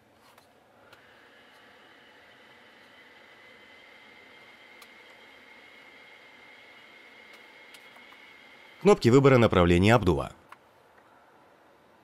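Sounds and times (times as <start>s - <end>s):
blower fan hissing: 0.6s - 10.1s.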